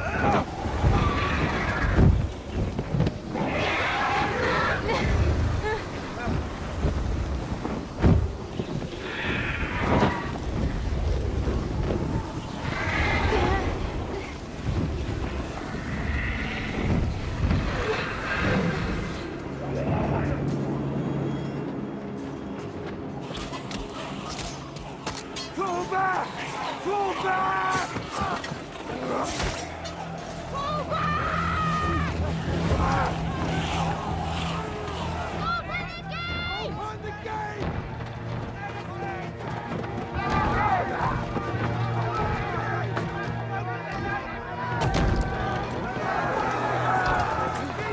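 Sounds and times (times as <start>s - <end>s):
strong wind rushing: 0.0s - 20.1s
people shouting and yelling: 0.0s - 20.6s, 24.1s - 47.9s
low music drone: 28.5s - 47.9s.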